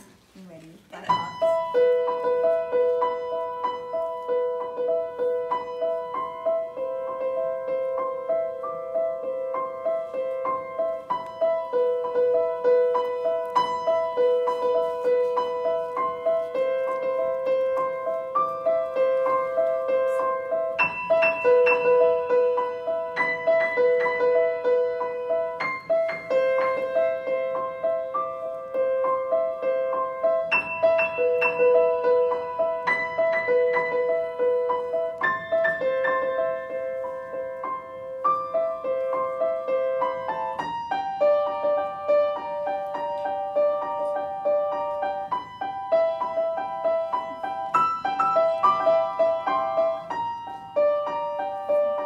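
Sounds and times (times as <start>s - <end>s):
solo grand piano: 0.0s - 52.0s.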